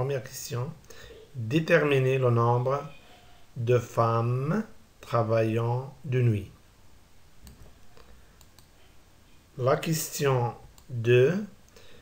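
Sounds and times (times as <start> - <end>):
computer mouse clicks: 7.4 - 8.8.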